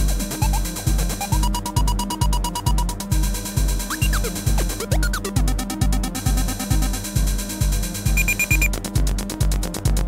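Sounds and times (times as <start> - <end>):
fast ticking: 8.1 - 8.7
short high synth beeps: 8.1 - 8.7.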